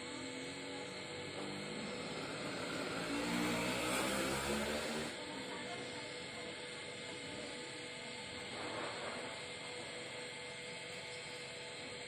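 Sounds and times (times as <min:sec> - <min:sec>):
vehicle engine running: 0:01.0 - 0:05.2.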